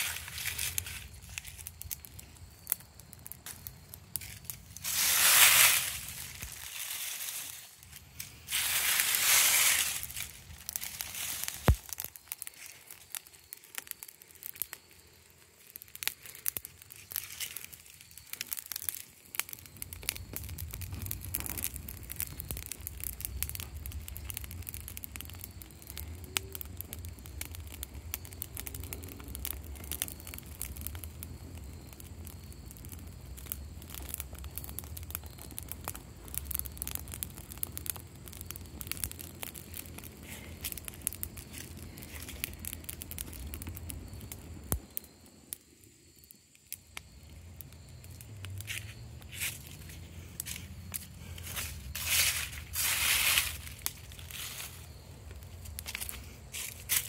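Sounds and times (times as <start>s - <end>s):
rustle of dry leaves: 0.0s - 30.5s, 35.2s - 44.7s, 48.0s - 57.0s
dry leaves burning and crackling: 0.0s - 57.0s.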